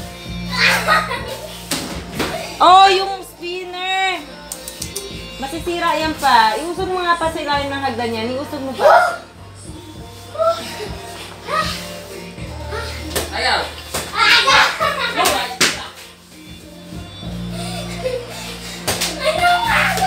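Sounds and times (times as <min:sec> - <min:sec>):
background music: 0:00.0 - 0:20.0.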